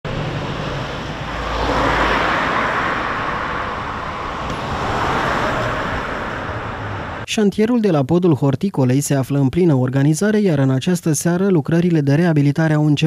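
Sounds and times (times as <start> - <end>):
car passing: 0.1 - 7.3
low rumble: 0.1 - 7.3.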